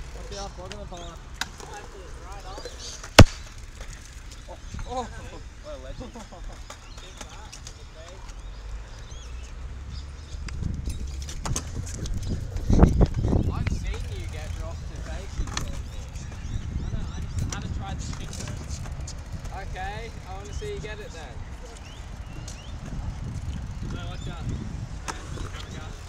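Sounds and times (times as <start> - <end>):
skateboard wheels rolling on concrete: 0.0 - 26.0
skateboard clicks and clatter: 10.5 - 16.4, 17.4 - 19.7, 25.0 - 26.0.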